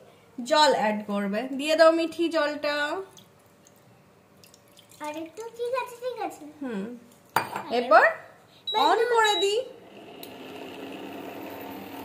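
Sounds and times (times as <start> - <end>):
water pouring into a pan: 4.4 - 5.7.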